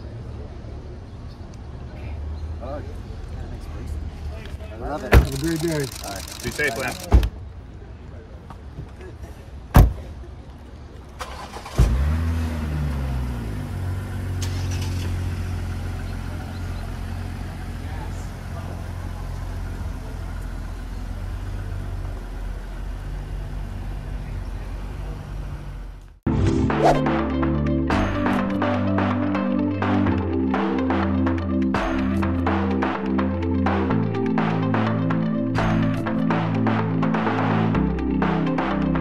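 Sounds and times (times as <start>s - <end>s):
car engine starting and idling: 4.8s - 7.4s, 11.0s - 26.2s
car door shutting: 5.1s - 5.6s.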